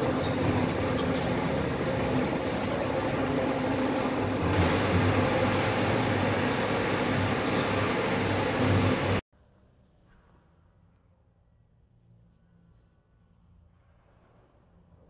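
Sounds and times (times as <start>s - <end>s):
electric fans humming: 0.0s - 9.2s.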